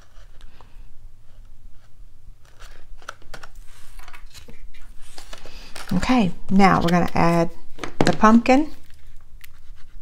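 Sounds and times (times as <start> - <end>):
cardstock rustling: 2.4 - 10.0.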